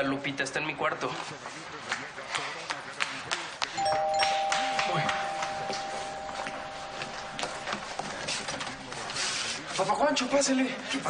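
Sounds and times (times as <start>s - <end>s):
two-tone doorbell chime: 3.8s - 8.9s.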